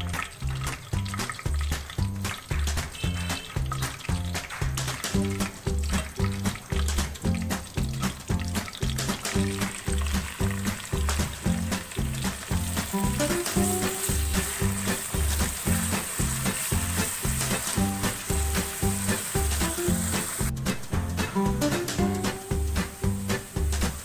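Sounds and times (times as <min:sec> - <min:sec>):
background music with beat: 0:00.0 - 0:24.0
onions sizzling in a wok: 0:00.0 - 0:24.0
spatula stirring: 0:06.3 - 0:20.5.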